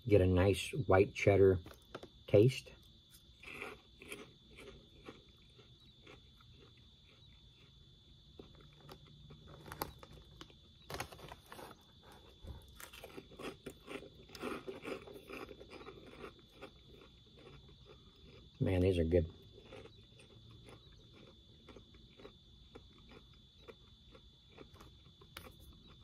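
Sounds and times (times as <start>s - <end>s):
chewing crunchy snack: 1.6s - 26.0s
snack bag crinkling: 3.1s - 18.5s, 19.5s - 26.0s.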